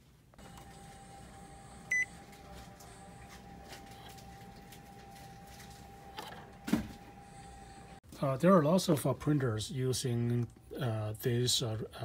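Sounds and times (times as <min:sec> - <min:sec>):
printer control panel beep: 0:00.4 - 0:02.4.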